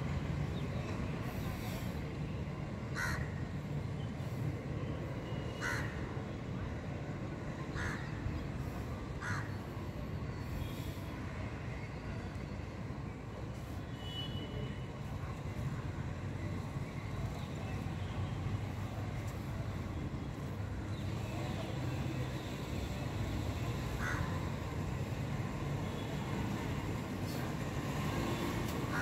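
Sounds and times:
crow cawing: 3.0s - 3.2s, 9.2s - 9.5s, 24.0s - 24.3s.

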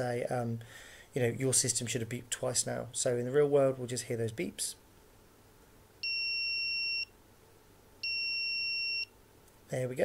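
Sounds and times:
high-pitched buzzer beeps: 6.0s - 7.1s, 8.0s - 9.1s.

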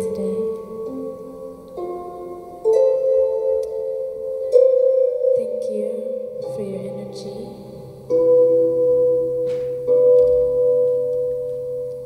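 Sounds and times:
held ambient notes: 0.0s - 12.0s.

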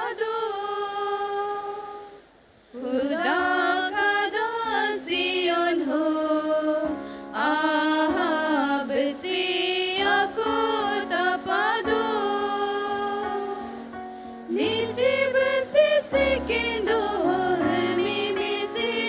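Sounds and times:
group singing devotional song: 0.0s - 2.2s, 2.8s - 13.9s, 14.5s - 19.0s.

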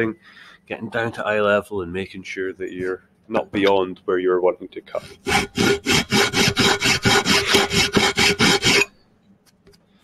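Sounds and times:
file rasping on metal: 5.0s - 9.0s.

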